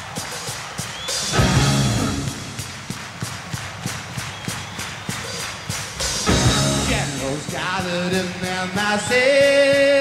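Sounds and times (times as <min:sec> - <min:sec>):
rock drum kit playing: 0:00.0 - 0:10.0.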